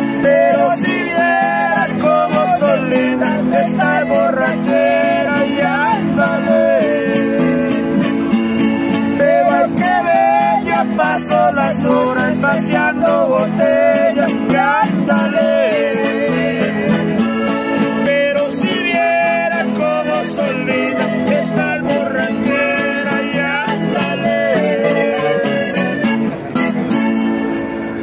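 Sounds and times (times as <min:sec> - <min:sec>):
acoustic guitars playing: 0:00.0 - 0:28.0.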